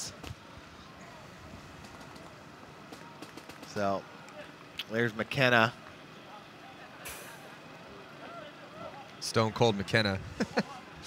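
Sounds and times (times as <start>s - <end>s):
outdoor noise: 0.0s - 11.0s
short hiss: 7.1s - 7.4s.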